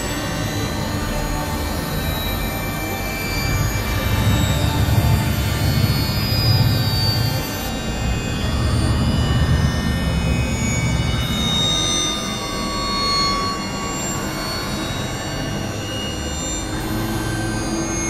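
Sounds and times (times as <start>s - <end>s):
low rumbling drone: 0.0s - 18.0s.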